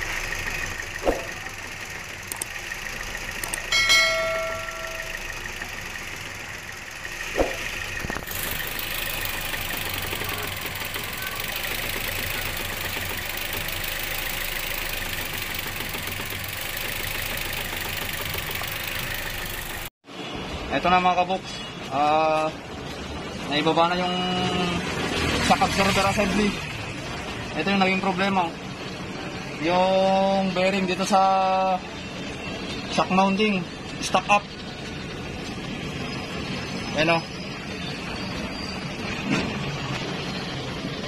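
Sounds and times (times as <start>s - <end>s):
car engine idling: 0.0s - 19.9s.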